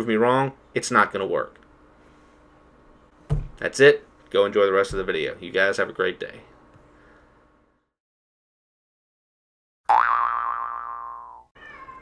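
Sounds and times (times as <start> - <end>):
cartoon boing sound effect: 9.9 - 11.5
cat meowing: 11.6 - 12.0.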